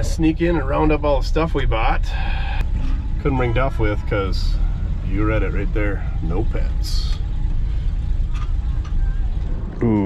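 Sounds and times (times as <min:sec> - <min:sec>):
pickup engine rumble: 0:00.0 - 0:10.0
road noise on gravel: 0:00.0 - 0:10.0.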